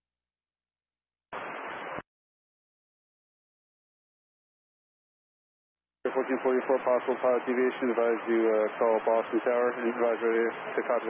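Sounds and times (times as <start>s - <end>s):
radio static burst: 1.4s - 2.0s.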